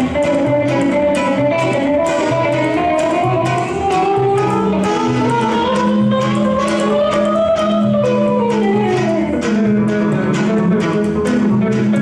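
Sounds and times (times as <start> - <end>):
double bass thumping: 0.0 - 12.0
electric guitar picking melody: 0.0 - 12.0.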